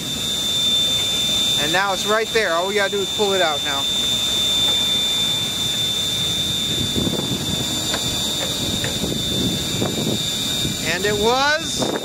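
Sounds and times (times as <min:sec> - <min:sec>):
vacuum system whining: 0:00.0 - 0:12.0.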